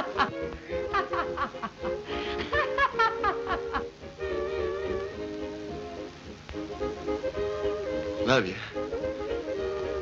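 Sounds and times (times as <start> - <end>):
background music with held chords: 0.0 - 10.0.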